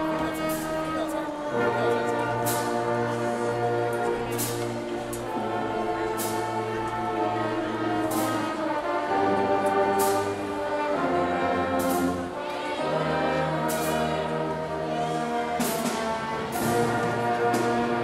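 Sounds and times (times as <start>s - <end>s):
marching band playing slow piece: 0.0s - 18.0s.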